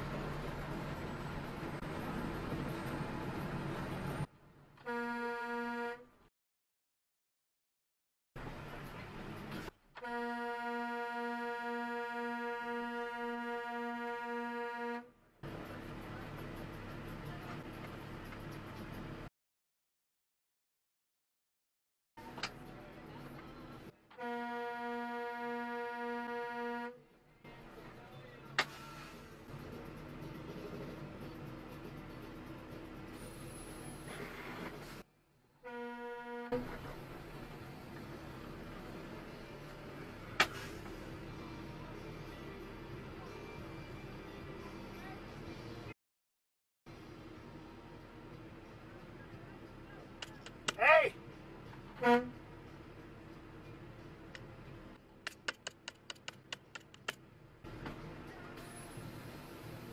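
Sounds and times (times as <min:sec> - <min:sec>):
road rumble: 0:00.0 - 0:04.9, 0:08.4 - 0:10.1, 0:15.0 - 0:19.3, 0:26.9 - 0:35.9, 0:36.5 - 0:46.0, 0:46.9 - 0:59.9
vehicle horn: 0:04.8 - 0:06.1, 0:10.0 - 0:15.2, 0:24.1 - 0:27.0, 0:35.6 - 0:36.6, 0:52.0 - 0:52.4
sharp click: 0:55.2 - 0:57.2.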